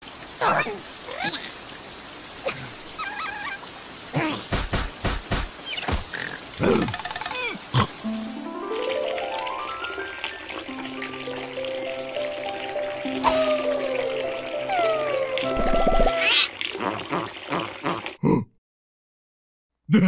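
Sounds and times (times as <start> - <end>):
gushing water: 0.0 - 18.2
rain: 0.0 - 18.2
squeaky cartoon vocalisations: 2.5 - 4.5, 6.2 - 7.8, 13.2 - 18.0.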